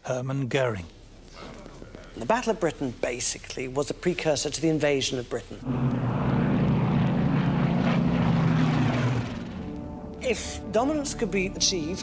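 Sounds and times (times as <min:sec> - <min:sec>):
propeller plane engines droning: 0:01.0 - 0:12.0.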